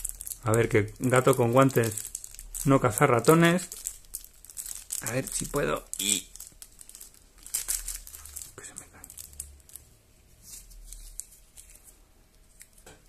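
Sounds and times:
plastic wrapping crinkling: 0.0s - 13.0s.

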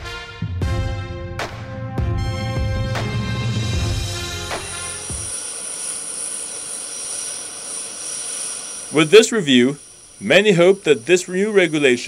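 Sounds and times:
jet engine noise: 2.9s - 12.0s
thin high whine: 2.9s - 12.0s.

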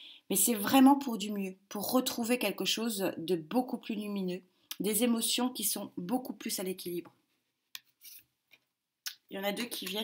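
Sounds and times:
cards brushing: 7.9s - 8.3s.

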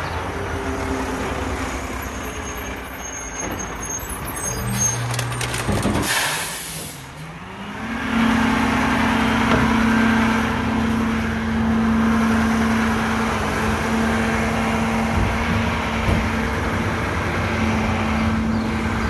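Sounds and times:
garbage truck engine: 0.0s - 19.0s
air brake hiss: 6.1s - 7.0s.

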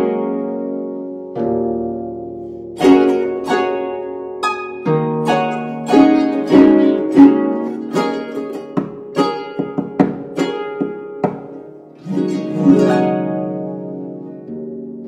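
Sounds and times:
harp plucked strings: 0.0s - 15.0s.

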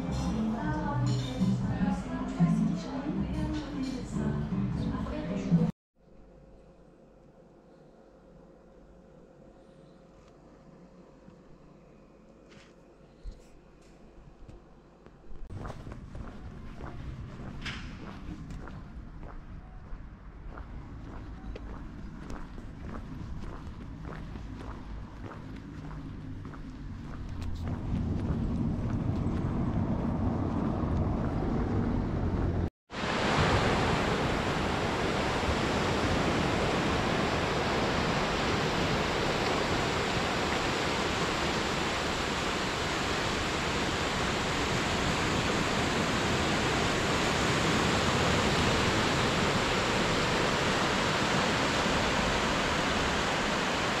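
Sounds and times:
low rumbling outdoor ambience: 0.0s - 54.0s
ocean surf washing onto beach: 32.9s - 54.0s.

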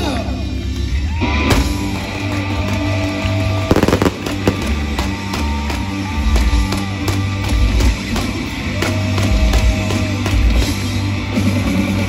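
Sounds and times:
rock band playing loudly: 1.1s - 12.0s
sharp pyrotechnic bangs: 3.7s - 5.0s.

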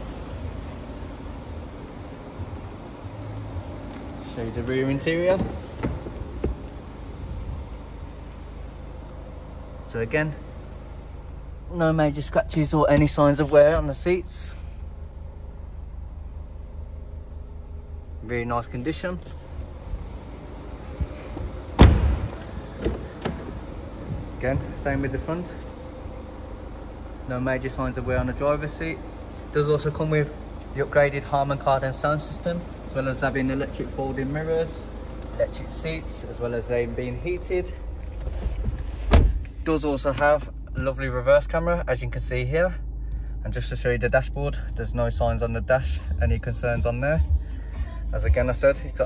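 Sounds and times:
car door shutting with thud: 5.2s - 6.7s, 21.3s - 24.8s, 38.1s - 39.6s.

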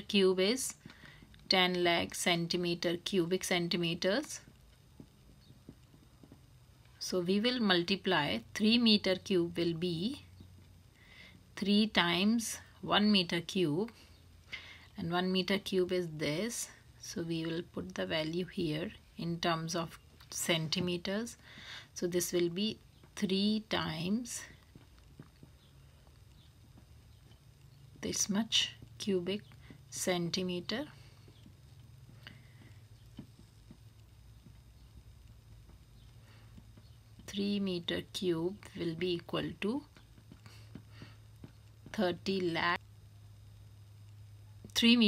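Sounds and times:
low steady hum: 0.0s - 45.0s.

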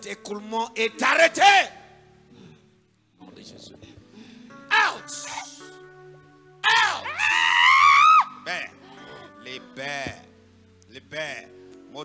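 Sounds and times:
background keyboard music: 0.0s - 12.0s
woman screaming into microphone: 6.6s - 8.5s.

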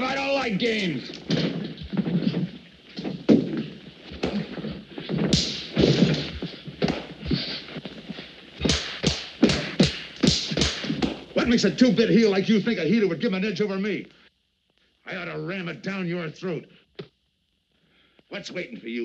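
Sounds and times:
scuffling and body thuds: 0.0s - 11.6s
sharp punch impacts: 5.2s - 7.6s, 8.6s - 11.4s.

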